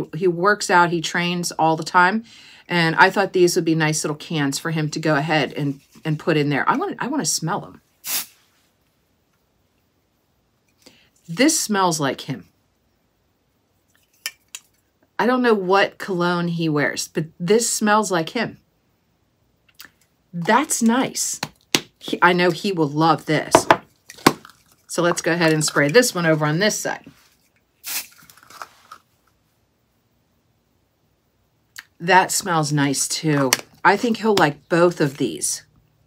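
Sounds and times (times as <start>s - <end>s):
aerosol spray hiss: 8.0s - 8.5s, 27.8s - 28.2s.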